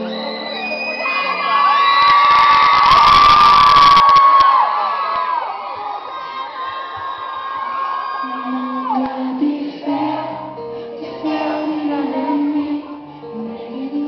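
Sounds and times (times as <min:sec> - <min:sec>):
crowd cheering and screaming: 0:00.0 - 0:10.6.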